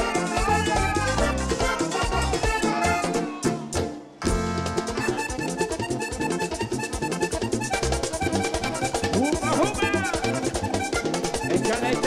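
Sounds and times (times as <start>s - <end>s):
electric bass: 0.0s - 11.7s
button accordion: 0.0s - 12.0s
hand percussion: 0.0s - 12.0s.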